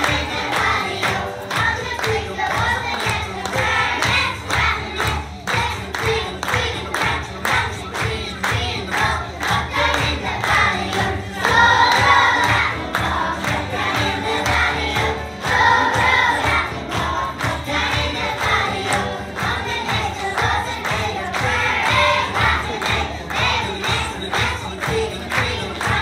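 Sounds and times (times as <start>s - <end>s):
children singing together: 0.0s - 26.0s
music with steady beat: 0.0s - 26.0s.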